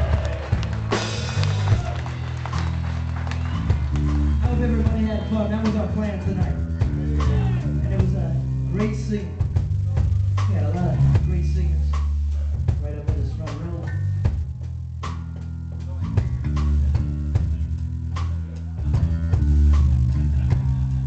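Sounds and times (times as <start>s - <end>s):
bass line: 0.0s - 21.0s
drum kit beat: 0.0s - 21.0s.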